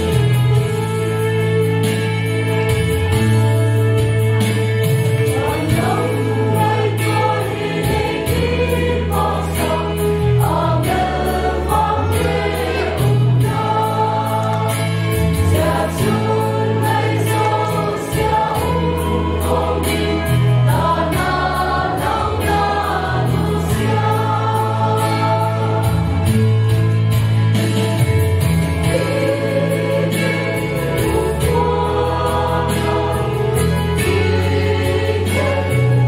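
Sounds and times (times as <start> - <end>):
choir singing gospel: 0.0 - 36.0
instrumental accompaniment with bass: 0.0 - 36.0.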